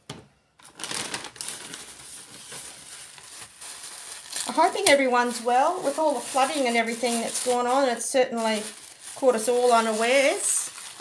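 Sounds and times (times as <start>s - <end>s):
tissue paper crinkling and rustling: 0.6s - 11.0s.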